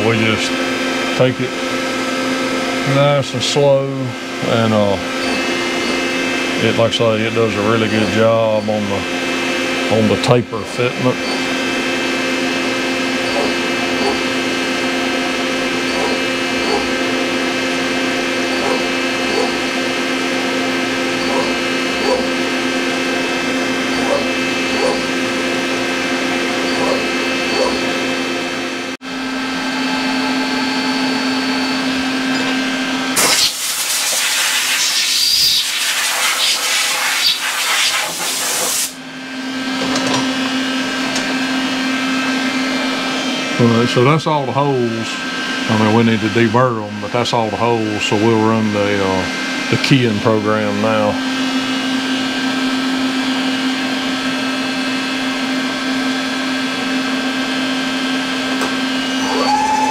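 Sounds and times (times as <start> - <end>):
milling machine whine: 0.0 - 59.9
loud hiss: 33.2 - 39.0.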